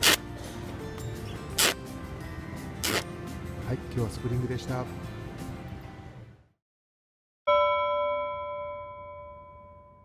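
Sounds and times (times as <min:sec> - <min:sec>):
bell-like chime note: 0:07.5 - 0:10.0.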